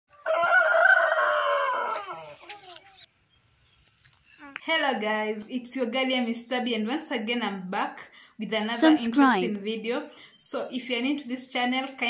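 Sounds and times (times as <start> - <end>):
rooster crowing: 0.1 - 2.4.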